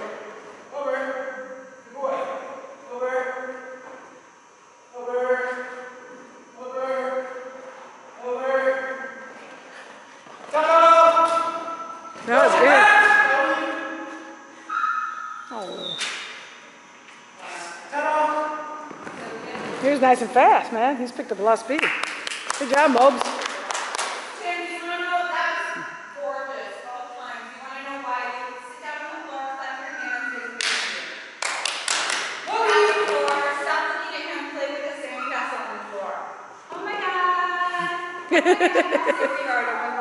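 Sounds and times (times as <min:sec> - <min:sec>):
people talking in a hall: 0:23.7 - 0:31.4, 0:32.4 - 0:40.0.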